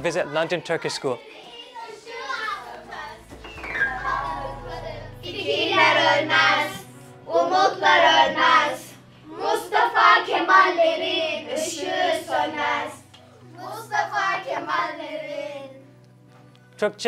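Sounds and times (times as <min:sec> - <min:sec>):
background music track: 0:00.0 - 0:17.0
children singing together: 0:01.1 - 0:15.9.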